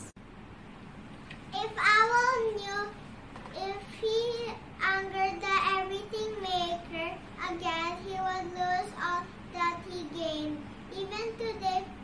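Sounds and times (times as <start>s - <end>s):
girl singing: 1.6s - 12.0s.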